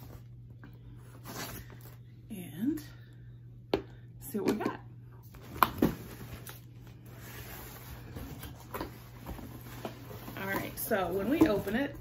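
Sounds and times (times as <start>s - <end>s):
cardboard rustling: 5.4s - 11.8s.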